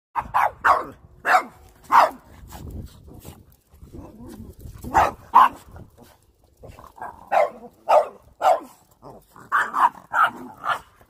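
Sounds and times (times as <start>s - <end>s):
dog barking sharply: 0.2s - 2.2s.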